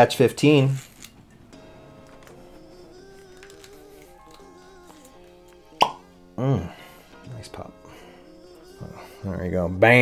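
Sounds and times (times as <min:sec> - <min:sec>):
faint background music: 0:00.0 - 0:10.0
cork popping from bottle: 0:05.8 - 0:06.1.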